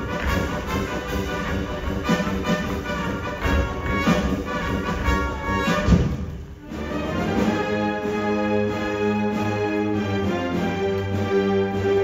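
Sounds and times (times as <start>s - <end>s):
orchestra playing: 0.0s - 12.0s.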